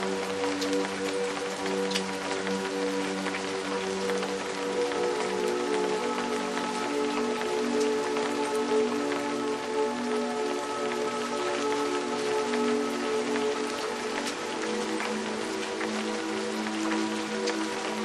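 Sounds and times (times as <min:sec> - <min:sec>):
ambient music with held notes: 0:00.0 - 0:18.0
raindrops ticking: 0:00.0 - 0:18.0
steady rain falling: 0:00.0 - 0:18.0.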